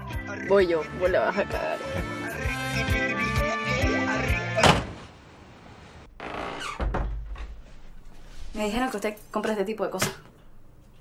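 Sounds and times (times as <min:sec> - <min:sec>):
door creaking open: 0:04.6 - 0:05.1, 0:06.2 - 0:07.8
low thud: 0:04.6 - 0:05.1.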